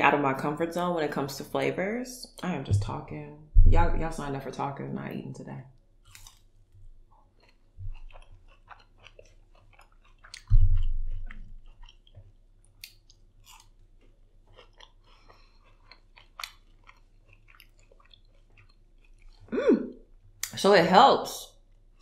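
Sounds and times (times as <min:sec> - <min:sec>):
loud low thump: 0:02.7 - 0:04.1, 0:10.5 - 0:10.9
crunchy chewing: 0:06.0 - 0:19.5.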